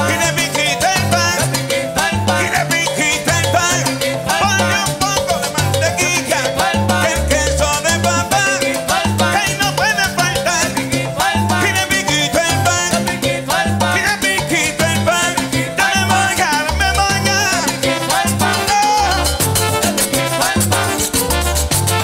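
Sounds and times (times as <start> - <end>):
person singing: 0.0 - 19.4
bass line: 0.0 - 22.0
congas and hand percussion: 0.0 - 22.0.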